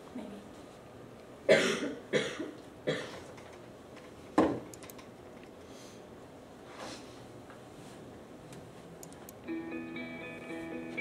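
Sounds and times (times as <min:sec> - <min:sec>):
person coughing: 0:01.5 - 0:03.3.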